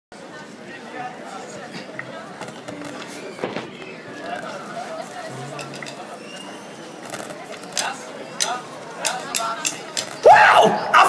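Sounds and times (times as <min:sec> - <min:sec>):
crowd chatter: 0:00.1 - 0:11.0
drumstick clicks: 0:07.7 - 0:10.2.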